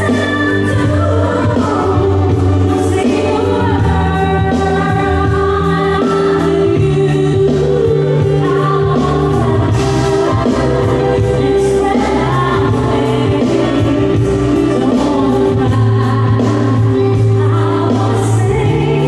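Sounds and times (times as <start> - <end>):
live band playing ballad: 0.0 - 19.0
woman singing lead: 0.0 - 19.0.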